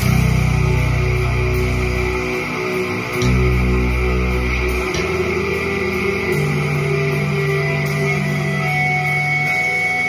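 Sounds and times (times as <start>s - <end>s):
electric bass: 0.0s - 10.0s
heavy metal rock music: 0.0s - 10.0s.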